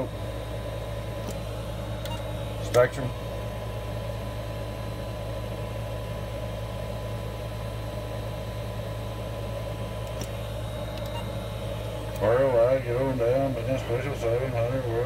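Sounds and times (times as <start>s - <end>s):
low electrical hum: 0.0s - 15.0s.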